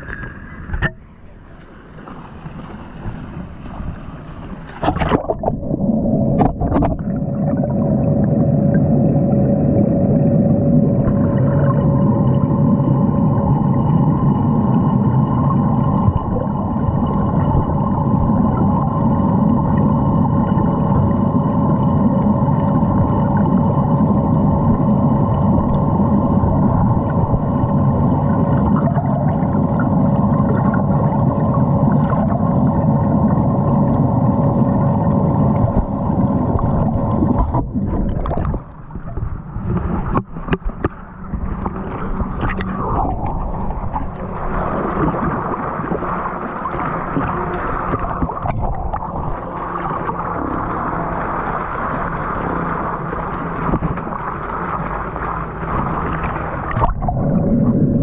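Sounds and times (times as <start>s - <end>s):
faint steady hum: 0.0s - 58.0s
muffled underwater rumble: 0.0s - 58.0s.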